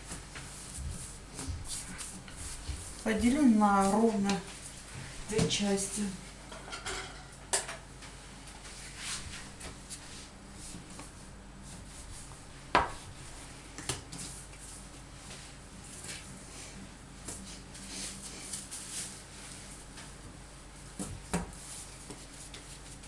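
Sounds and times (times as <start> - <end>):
soft rustles of dough handling: 0.0 - 23.0.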